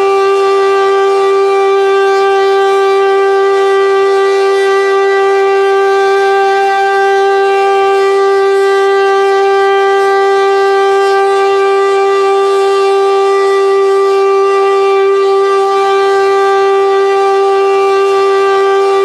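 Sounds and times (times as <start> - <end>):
air siren steady tone: 0.0 - 19.0.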